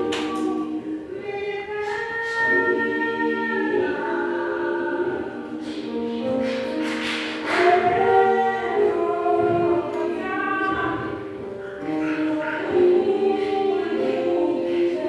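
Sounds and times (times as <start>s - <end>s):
choir singing sustained chords: 0.0s - 15.0s
breathy hiss: 5.1s - 7.8s.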